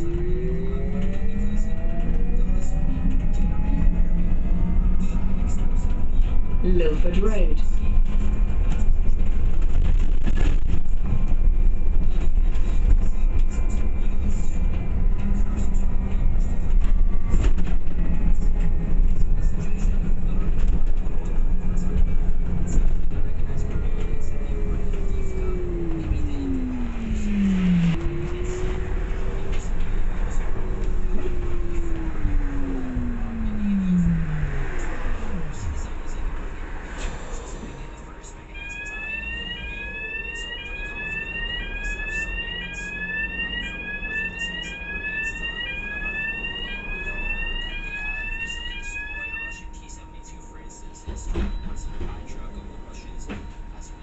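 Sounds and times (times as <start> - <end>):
falling drivetrain whine: 0.0 - 6.6, 12.6 - 49.3
bus drivetrain rumbling: 0.0 - 38.9, 49.5 - 54.0.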